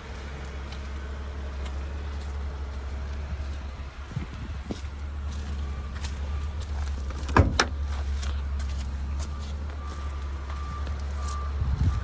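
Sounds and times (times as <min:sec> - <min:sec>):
low rumble: 0:00.0 - 0:12.0
low thump: 0:07.3 - 0:07.8
car warning chime beeping: 0:09.0 - 0:12.0.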